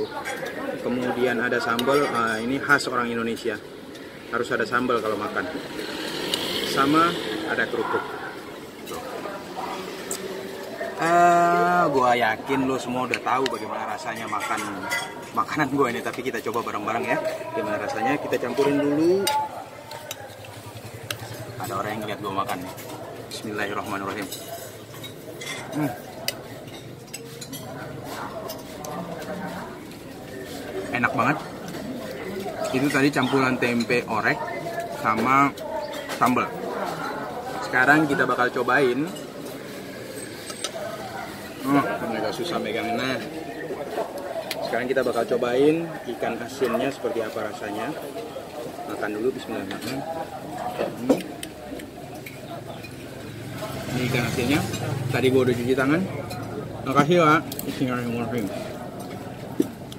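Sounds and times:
background chatter: 0.0s - 59.9s
plates and cutlery clinking: 12.6s - 44.7s, 46.6s - 55.0s.

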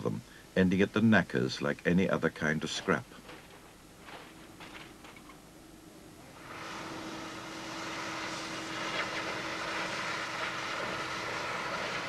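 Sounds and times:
steady mechanical roar: 6.2s - 12.0s.

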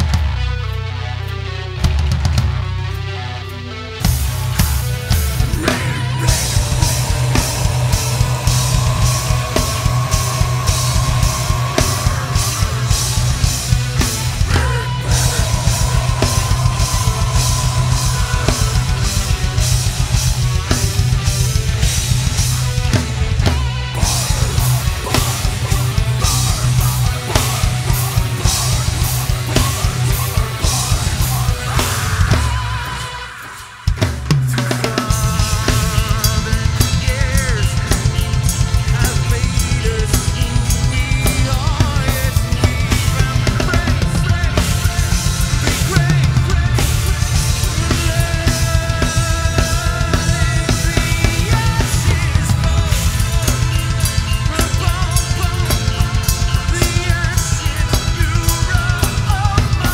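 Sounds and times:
heavy metal band playing live: 0.0s - 59.9s.

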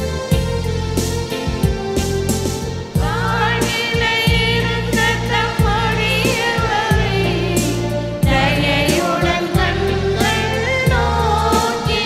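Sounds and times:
hymn singing: 2.8s - 12.0s.

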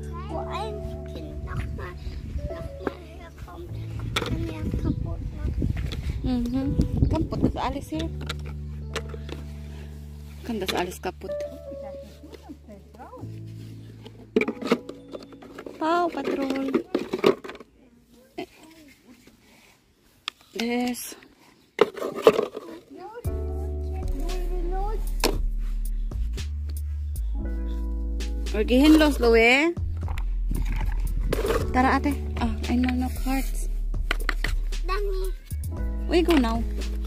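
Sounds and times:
children's voices: 0.0s - 5.6s, 22.6s - 25.0s, 34.8s - 35.6s
faint background music: 0.0s - 21.2s, 21.9s - 37.0s
plastic toys knocking: 14.4s - 17.7s
rough scraping: 30.0s - 35.3s.

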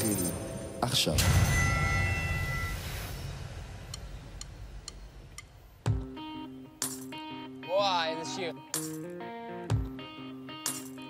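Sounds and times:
chord ringing: 0.0s - 5.0s
count-in ticks: 3.9s - 5.6s.

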